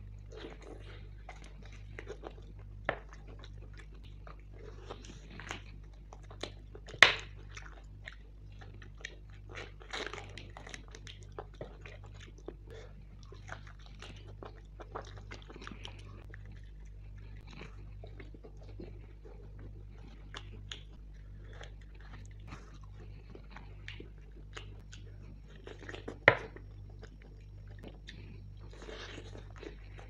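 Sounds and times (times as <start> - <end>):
steady low hum: 0.0 - 30.0
wet chewing and mouth smacks: 0.0 - 30.0.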